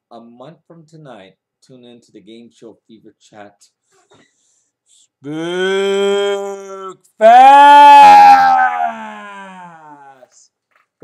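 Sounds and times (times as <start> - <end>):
man howling: 5.3 - 10.2.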